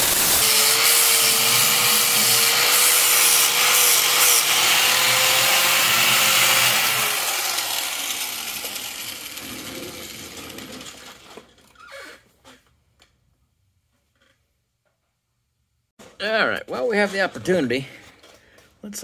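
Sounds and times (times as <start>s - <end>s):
angle grinder grinding steel: 0.0s - 11.2s
grinder winding down: 0.0s - 11.3s.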